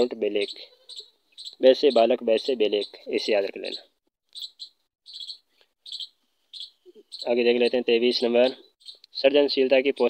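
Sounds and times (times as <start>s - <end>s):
small bird chirping: 0.0s - 10.0s
person speaking: 1.6s - 4.0s, 6.8s - 10.0s.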